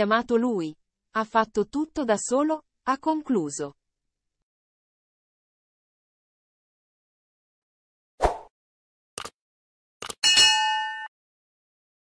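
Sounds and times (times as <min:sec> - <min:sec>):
short clicks: 0:10.0 - 0:10.2
bell-like chime: 0:10.2 - 0:11.1.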